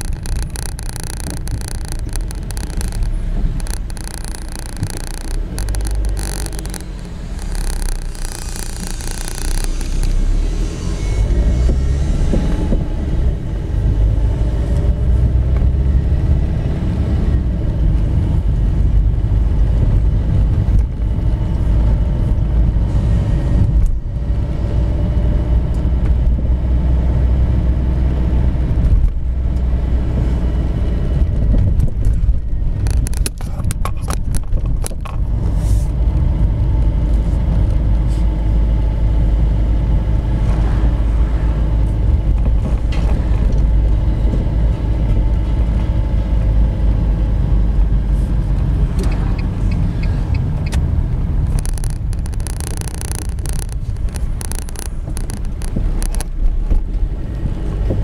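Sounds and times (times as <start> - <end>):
quick clicks or knocks: 0.0 - 10.2
car engine and road rumble: 0.0 - 58.0.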